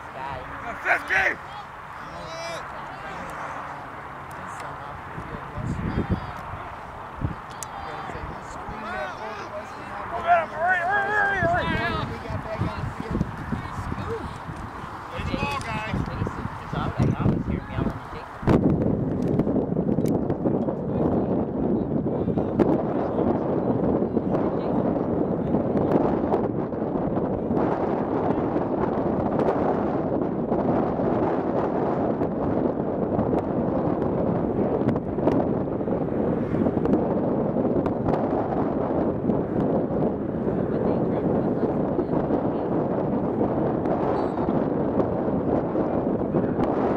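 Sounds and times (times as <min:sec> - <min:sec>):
wind buffeting microphone: 0:00.0 - 0:46.9
players shouting: 0:00.3 - 0:03.6, 0:06.3 - 0:16.0.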